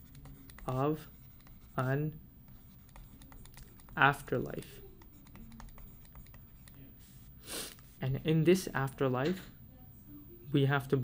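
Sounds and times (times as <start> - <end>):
low steady hum: 0.0 - 11.0
stylus tapping on pen tablet: 2.5 - 4.2, 5.0 - 6.8.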